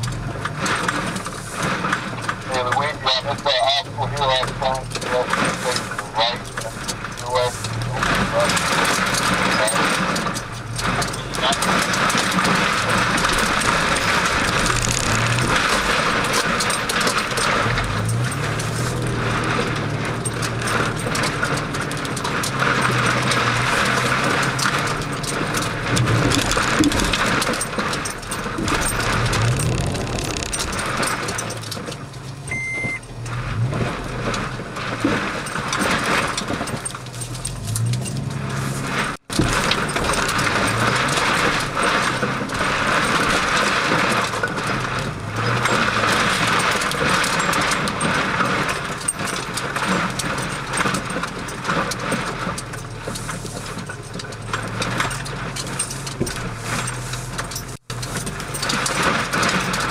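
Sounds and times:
cab knocks and rattles: 0.0 - 59.9
vehicle engine droning: 0.0 - 59.9
short beep: 32.5 - 33.1.

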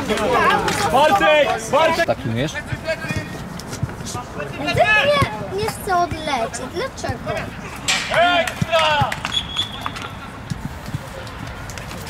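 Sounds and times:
players shouting calls: 0.0 - 3.4, 4.3 - 10.3
short high whistle: 9.3 - 9.9.

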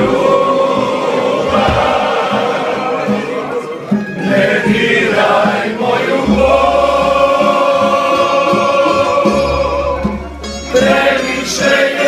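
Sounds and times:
group singing in harmony: 0.0 - 12.0
strummed string instruments: 0.0 - 12.0.

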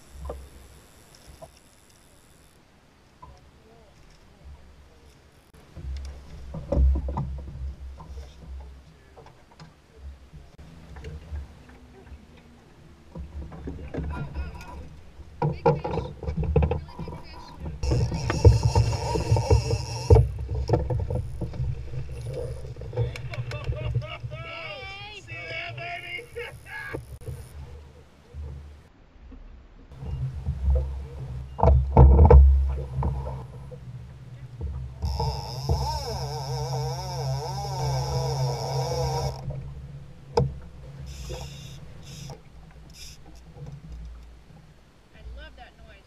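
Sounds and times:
low rumble of boat: 0.0 - 46.0
water against hull: 0.0 - 46.0
wind: 0.0 - 46.0
small knocks: 5.7 - 11.8, 13.1 - 23.8, 30.0 - 39.7
voices: 22.4 - 27.2, 45.1 - 46.0.

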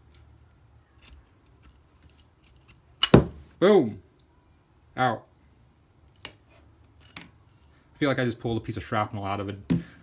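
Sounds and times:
pliers clicking and scraping metal: 0.0 - 3.1.

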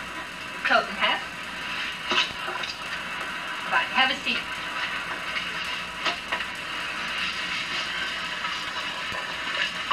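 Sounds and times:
old film soundtrack hiss: 0.0 - 9.9.

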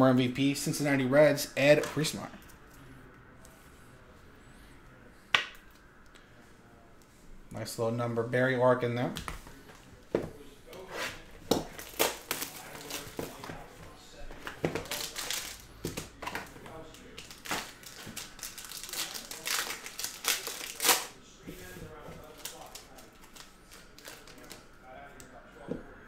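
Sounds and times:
plastic wrap crinkling: 11.5 - 24.7.

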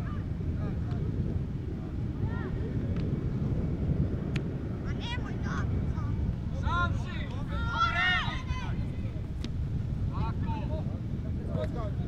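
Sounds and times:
wind buffeting microphone: 0.0 - 12.0
young footballers shouting: 4.8 - 9.2.

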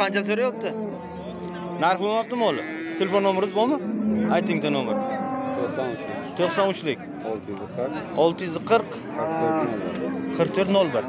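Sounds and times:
cow mooing: 0.0 - 8.0, 9.0 - 11.0.

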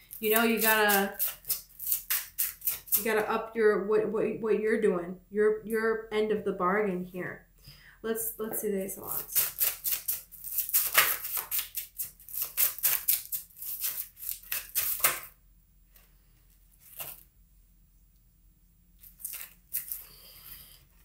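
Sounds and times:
cards shuffled by hand: 9.3 - 15.3.

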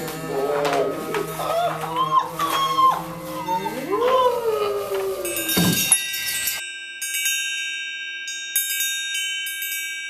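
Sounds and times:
metal chimes ringing: 4.7 - 10.0.

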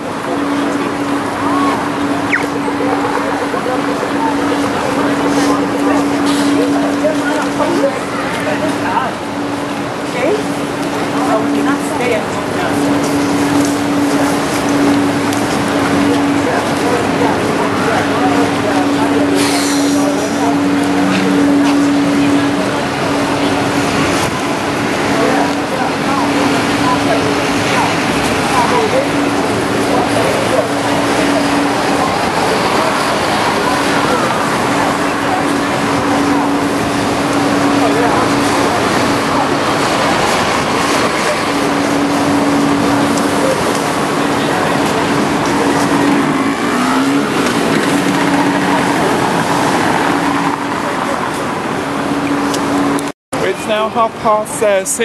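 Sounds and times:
steady low hum: 0.0 - 53.2
indistinct voices of passers-by: 0.0 - 55.0
traffic noise: 0.0 - 55.0.

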